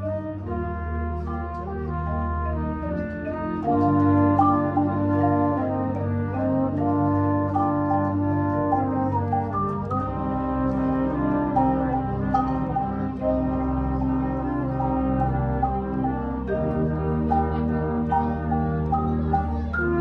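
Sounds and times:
concert band playing brass chords: 0.0 - 20.0.

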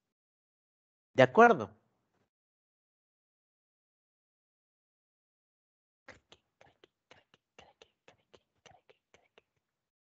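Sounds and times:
faint whispering: 6.1 - 9.8.

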